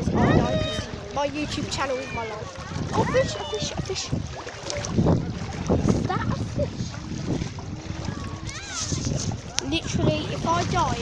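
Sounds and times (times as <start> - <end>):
sea water sloshing: 0.0 - 11.0
wind buffeting microphone: 0.0 - 11.0.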